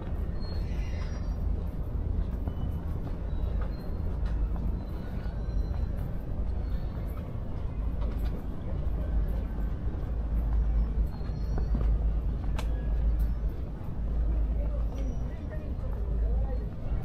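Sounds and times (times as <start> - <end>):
faint distant voices: 0.0 - 17.0
low rumble of traffic: 0.0 - 17.0.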